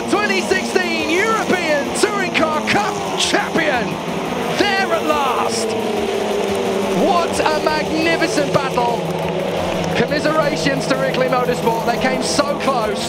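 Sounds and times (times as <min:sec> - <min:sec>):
background music: 0:00.0 - 0:13.0
excited race commentator: 0:00.0 - 0:13.0
racing car engines: 0:00.0 - 0:13.0.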